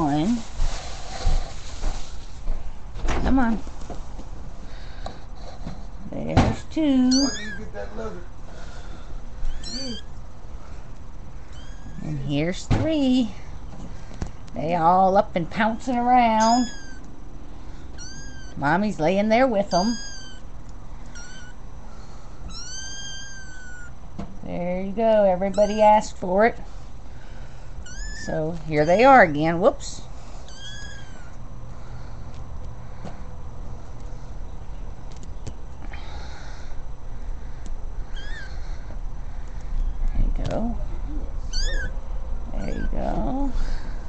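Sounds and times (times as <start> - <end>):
low steady rumble: 0.0 - 44.0
kittens mewing: 6.9 - 8.2, 9.1 - 10.2, 11.3 - 12.4, 16.2 - 18.8, 19.6 - 24.0, 25.4 - 26.0, 27.7 - 29.3, 30.3 - 31.9, 38.0 - 39.0, 41.2 - 43.9.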